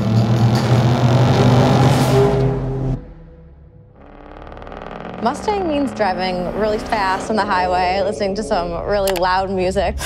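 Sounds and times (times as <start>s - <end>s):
car engine driving by: 5.4s - 8.9s.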